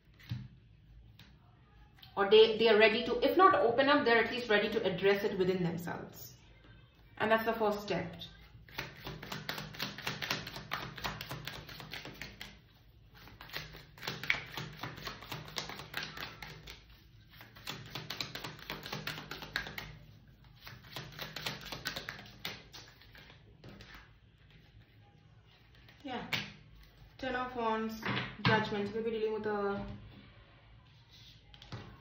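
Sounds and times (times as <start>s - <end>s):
cards being shuffled: 8.6s - 12.6s, 13.2s - 24.8s.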